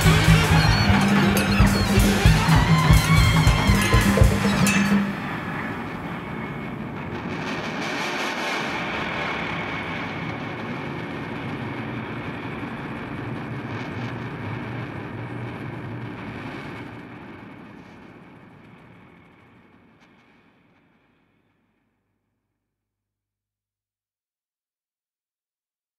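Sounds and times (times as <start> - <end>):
faint high tone: 0.0 - 6.6
band final hit: 0.0 - 8.8
rumbling hissing wash: 0.0 - 19.4.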